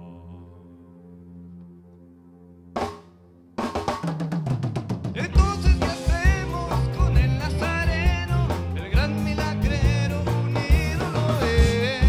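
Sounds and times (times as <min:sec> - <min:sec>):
drum fill on snare and toms: 0:02.8 - 0:06.5
rock band playing: 0:02.8 - 0:12.0.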